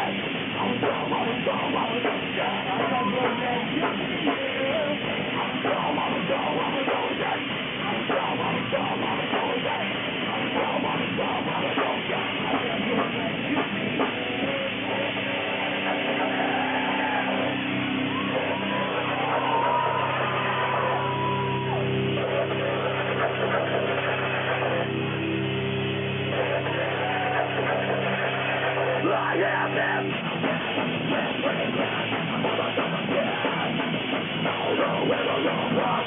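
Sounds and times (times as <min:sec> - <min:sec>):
heavy metal band playing live: 0:00.0 - 0:36.0.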